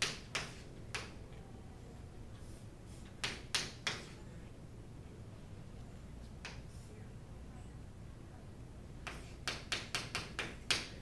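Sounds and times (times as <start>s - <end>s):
chalk strokes on chalkboard: 0.1s - 1.1s, 2.3s - 4.2s, 6.3s - 7.0s, 9.0s - 10.9s.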